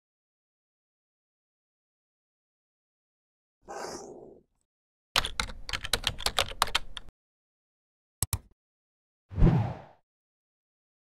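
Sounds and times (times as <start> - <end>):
keyboard key clicks: 8.2 - 8.5.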